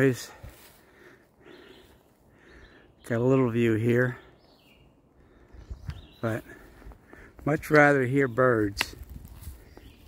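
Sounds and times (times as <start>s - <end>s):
distant birds calling: 0.0s - 10.0s.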